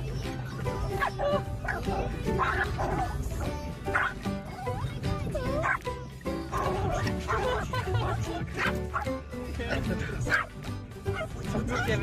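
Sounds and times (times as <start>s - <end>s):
background music: 0.0s - 12.0s
small dog barking and yipping: 0.5s - 9.2s, 10.2s - 12.0s.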